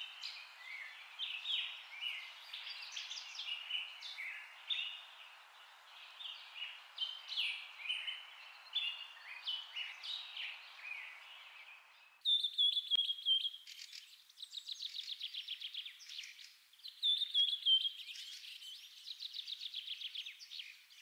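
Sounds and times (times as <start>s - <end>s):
birds chirping and singing: 0.0s - 20.9s.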